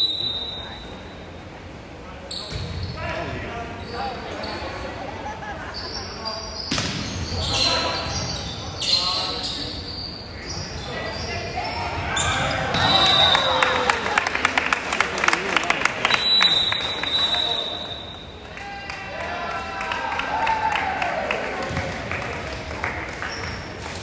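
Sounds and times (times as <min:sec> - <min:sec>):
voices of players and spectators: 0:00.0 - 0:24.0
volleyball slaps: 0:06.7 - 0:07.1
crowd cheering: 0:11.7 - 0:23.6.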